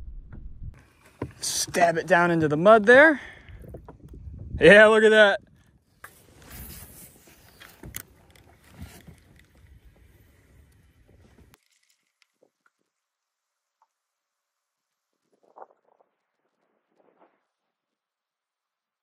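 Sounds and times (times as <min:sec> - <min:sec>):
wind rumbling on microphone: 0:03.3 - 0:11.6.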